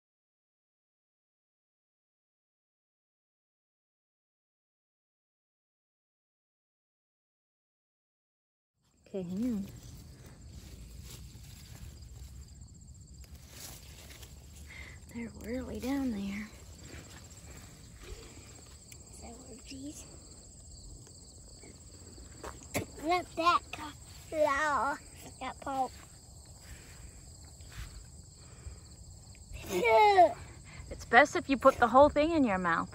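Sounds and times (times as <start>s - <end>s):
crickets chirring: 8.8s - 32.9s
plant leaves rustling: 9.1s - 20.4s.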